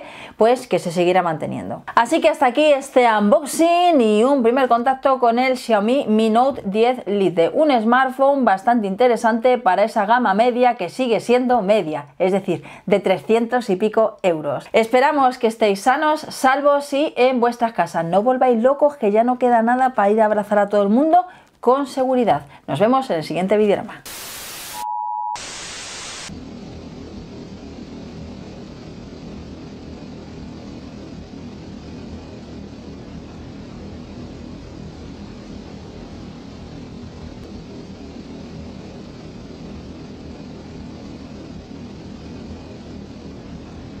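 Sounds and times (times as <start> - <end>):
loud static: 24.0 - 44.0
short beep: 24.6 - 25.5
buzzing droning hum: 25.4 - 44.0.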